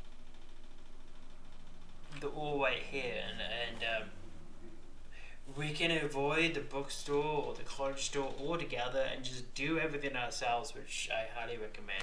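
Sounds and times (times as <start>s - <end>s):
microphone hiss: 0.0s - 12.0s
room hum: 0.0s - 12.0s.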